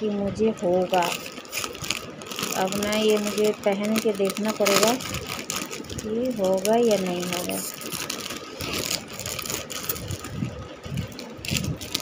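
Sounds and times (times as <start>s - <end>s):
plastic packaging crinkling: 0.4s - 12.0s.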